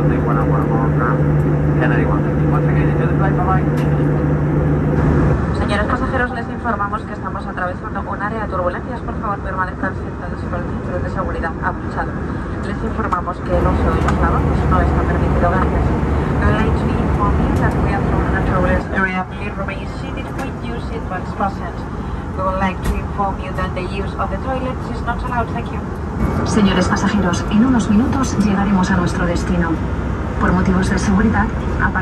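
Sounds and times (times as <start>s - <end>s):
airliner engines and airflow roar: 0.0s - 32.0s
indistinct voices talking: 0.0s - 32.0s.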